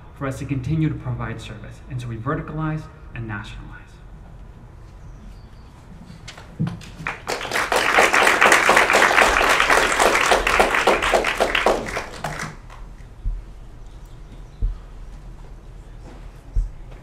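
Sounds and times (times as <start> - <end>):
audience applauding: 6.8 - 12.9.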